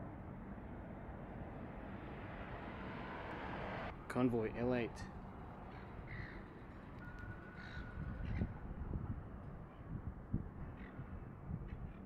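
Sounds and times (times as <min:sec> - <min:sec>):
crow-like animal calls: 0:05.7 - 0:06.4, 0:07.5 - 0:08.5.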